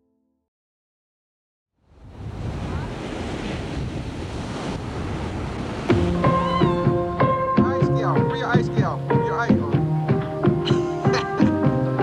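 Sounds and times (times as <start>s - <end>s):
wind on microphone: 1.9s - 8.0s
ocean waves breaking: 1.9s - 12.0s
music with held notes: 5.9s - 12.0s.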